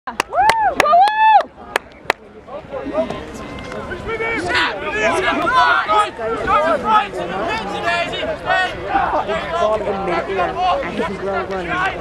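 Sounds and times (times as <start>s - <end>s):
spectator shouting: 4.1s - 9.6s.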